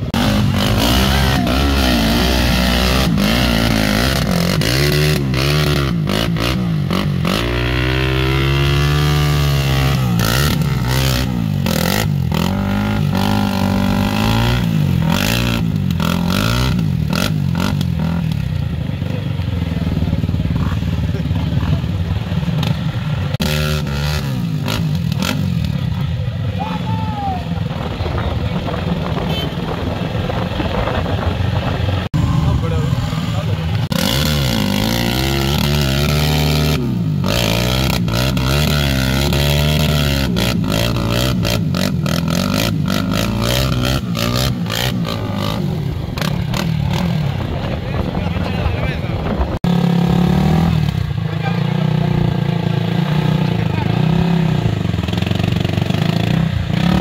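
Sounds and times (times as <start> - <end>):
quad engine revving hard: 0.0 - 18.4, 22.6 - 25.9, 32.0 - 57.0.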